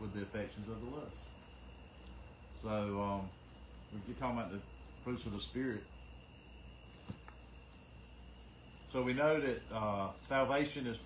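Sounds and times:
light tap of book handled: 6.9 - 7.4.

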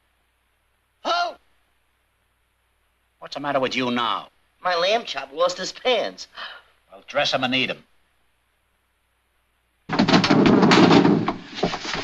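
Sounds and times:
rapid banging and crashing impacts: 9.9 - 12.0.

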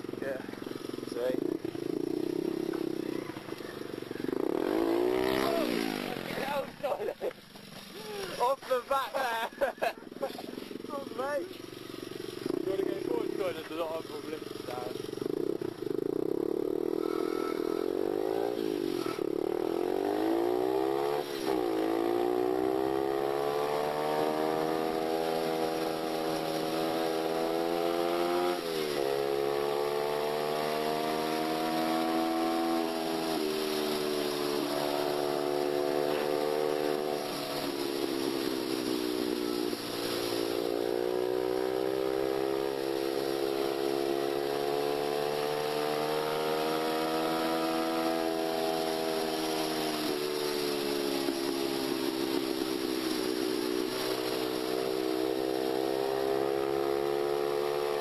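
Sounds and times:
small motorcycle engine accelerating: 0.0 - 58.0.

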